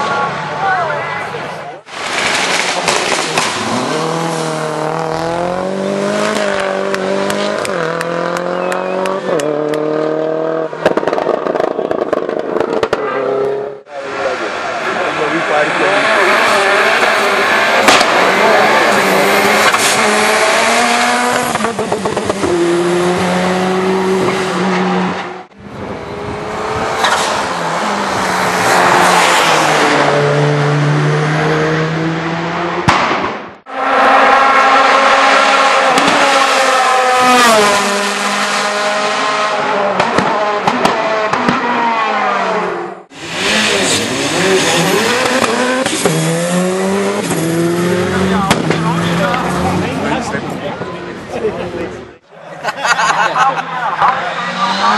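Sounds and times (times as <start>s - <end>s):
race car engines revving: 0.0s - 54.9s
exhaust backfire bangs: 32.8s - 33.5s, 48.4s - 49.0s.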